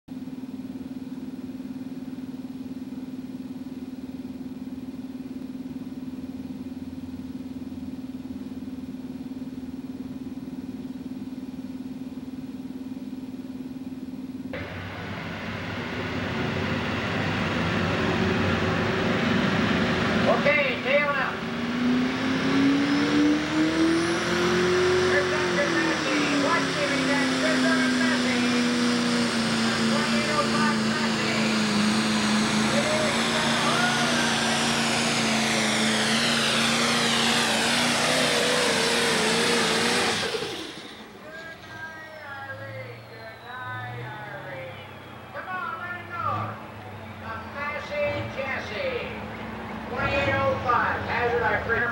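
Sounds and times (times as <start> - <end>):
steady low hum: 0.1 - 51.9
tractor diesel engine under load: 14.6 - 51.9.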